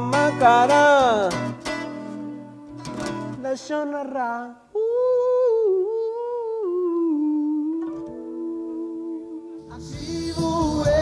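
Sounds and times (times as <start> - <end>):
person humming: 4.7 - 11.0.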